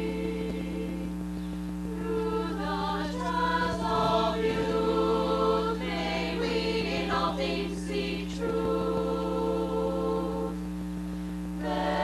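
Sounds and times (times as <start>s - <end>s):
choir singing: 0.0s - 1.2s, 1.9s - 10.6s, 11.6s - 12.0s
steady low hum: 0.0s - 12.0s.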